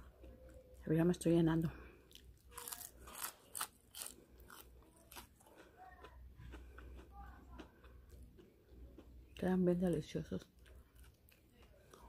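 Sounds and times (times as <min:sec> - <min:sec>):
crisp chewing crunches: 0:02.1 - 0:09.5.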